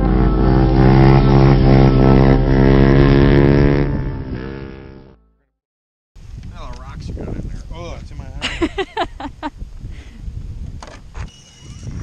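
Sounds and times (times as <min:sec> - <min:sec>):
motorcycle engine running: 0:00.0 - 0:05.2.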